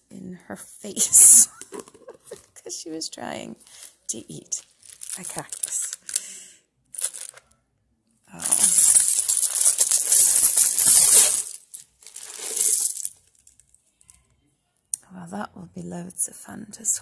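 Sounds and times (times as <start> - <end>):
buttons pouring and clattering: 4.8 - 6.3, 7.0 - 7.4, 8.4 - 13.2.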